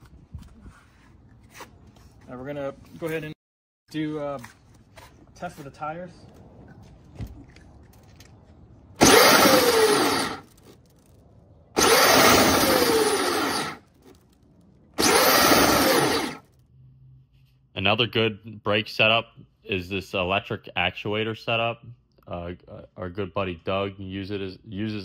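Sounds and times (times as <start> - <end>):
electric motors spinning wheels: 9.0 - 10.6, 11.8 - 14.3, 15.0 - 16.5.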